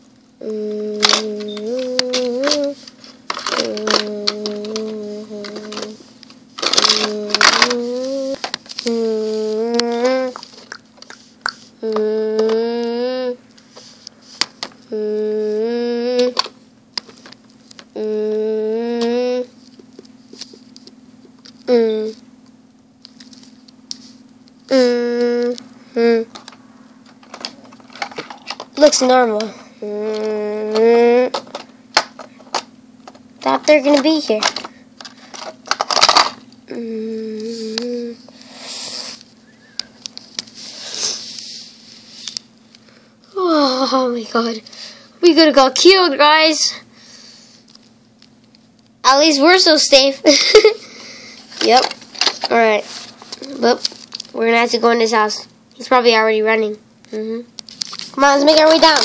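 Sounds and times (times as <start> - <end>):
person humming held notes: 0.4 - 2.8, 6.7 - 10.6, 11.8 - 13.4, 14.9 - 16.4, 18.0 - 19.6, 24.7 - 26.3, 29.8 - 31.4
plastic toys clicking: 0.9 - 6.0, 6.6 - 9.0, 30.1 - 36.4.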